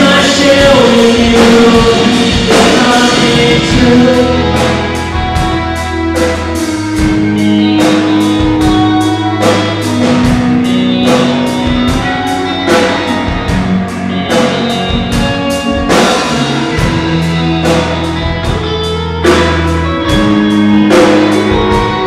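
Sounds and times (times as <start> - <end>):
drum and cymbal hits: 0.0 - 22.0
held bass notes: 0.0 - 22.0
live rock band playing: 0.0 - 22.0.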